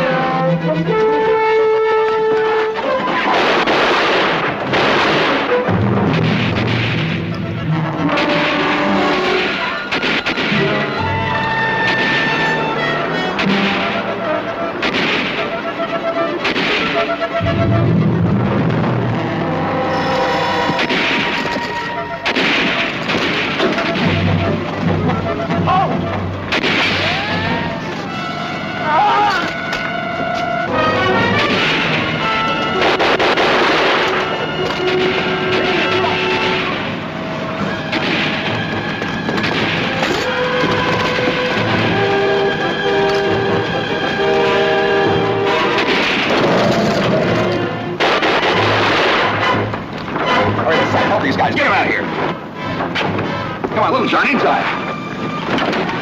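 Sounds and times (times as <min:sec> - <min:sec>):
background music score: 0:00.0 - 0:56.0
gunfire: 0:02.6 - 0:19.2, 0:20.2 - 0:25.0, 0:26.5 - 0:27.4, 0:30.7 - 0:50.7, 0:53.0 - 0:56.0
explosions: 0:02.8 - 0:15.6, 0:16.4 - 0:25.2, 0:26.4 - 0:27.8, 0:30.7 - 0:52.4.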